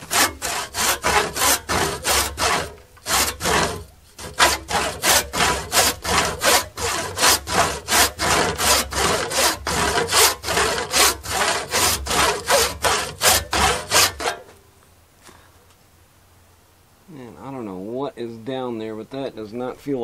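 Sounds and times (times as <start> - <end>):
hand saw cutting wood: 0.0 - 14.5.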